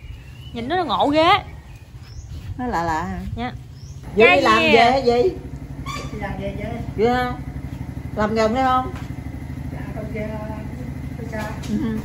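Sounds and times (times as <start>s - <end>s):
scooter engine idling: 3.4s - 12.0s.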